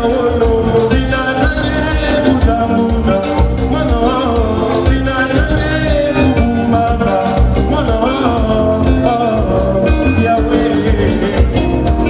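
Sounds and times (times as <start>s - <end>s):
live band dance groove: 0.0s - 12.0s
person singing: 0.0s - 12.0s.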